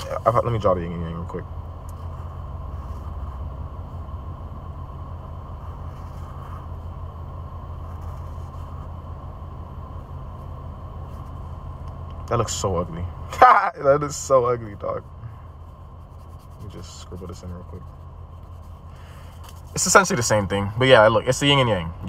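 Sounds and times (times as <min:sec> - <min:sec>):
car engine hum from inside: 0:00.0 - 0:22.0.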